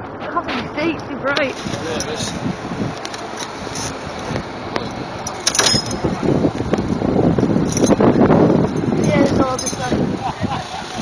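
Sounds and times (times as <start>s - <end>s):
crane engine running: 0.0s - 11.0s
brief metallic jingle: 5.3s - 6.0s.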